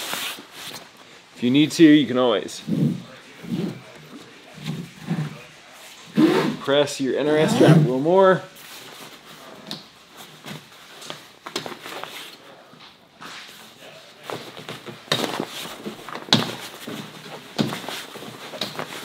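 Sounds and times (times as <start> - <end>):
fabric rustling: 13.3 - 19.0.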